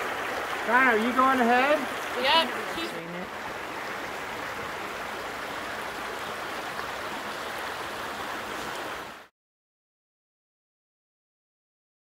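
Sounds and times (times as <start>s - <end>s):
creek flowing over rocks: 0.0s - 9.3s.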